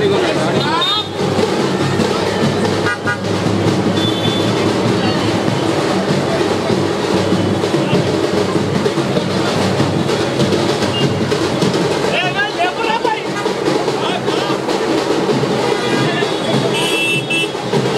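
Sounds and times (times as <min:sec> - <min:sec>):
crowd noise: 0:00.0 - 0:17.9
music: 0:00.0 - 0:17.9.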